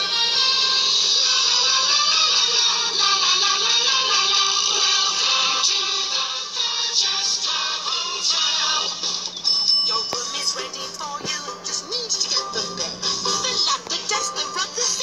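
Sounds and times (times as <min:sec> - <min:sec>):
children's theme song with singing: 0:00.0 - 0:15.0.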